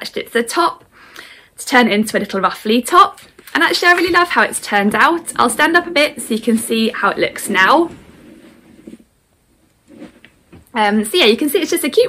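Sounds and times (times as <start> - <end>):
clothing and cushions rustling: 3.5 - 10.7
soft bumps: 3.8 - 10.8.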